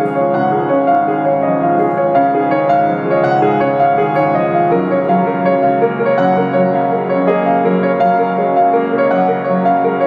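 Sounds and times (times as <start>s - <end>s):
piano melody over chords: 0.0s - 10.0s.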